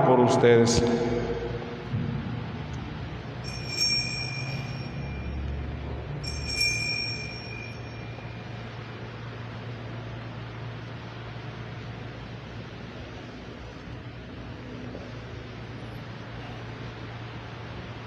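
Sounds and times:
steady low hum: 0.0 - 18.0
small bell ringing: 3.2 - 9.0.

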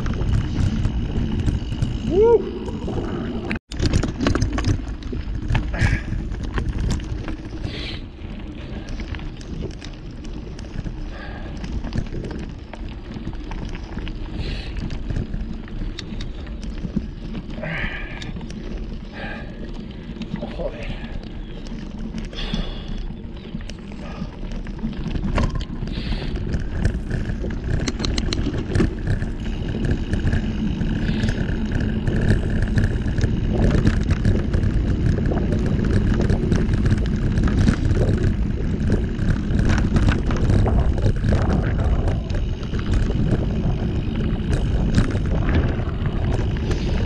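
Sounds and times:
bike clicks and rattles: 0.0 - 47.0
knobby tyres rumbling on gravel: 0.0 - 47.0
wind buffeting microphone: 0.0 - 47.0.

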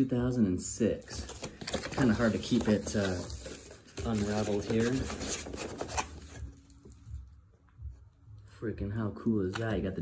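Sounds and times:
paper rustling: 1.0 - 6.7.

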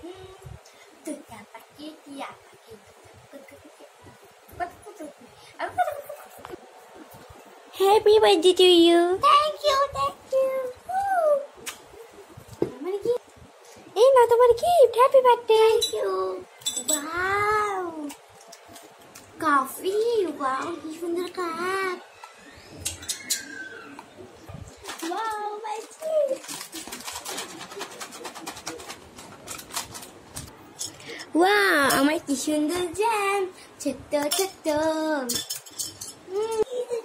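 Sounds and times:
plastic wrapping crinkling: 24.7 - 30.5.

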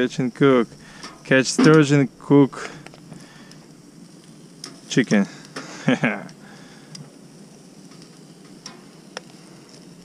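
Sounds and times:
chicken sizzling on a grill: 0.0 - 10.0.

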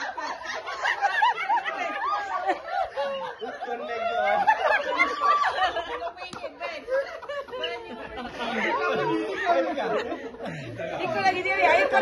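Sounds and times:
people talking at once: 0.1 - 12.0.

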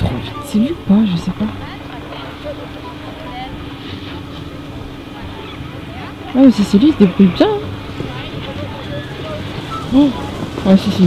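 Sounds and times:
faint distant voices: 0.0 - 11.0
mechanical hum: 0.0 - 11.0.

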